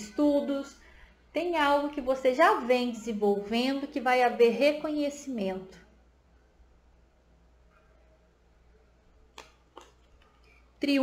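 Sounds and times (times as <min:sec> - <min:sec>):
soft clicks of cards: 0:09.3 - 0:10.6.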